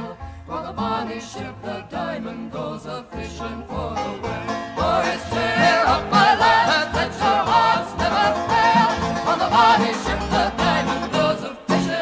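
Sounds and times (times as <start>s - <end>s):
banjo: 0.0s - 12.0s
guitar: 0.0s - 12.0s
voices singing folk music: 0.0s - 12.0s.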